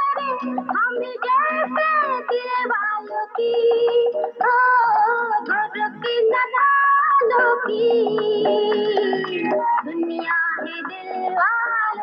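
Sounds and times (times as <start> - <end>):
high voice singing: 0.0 - 12.0.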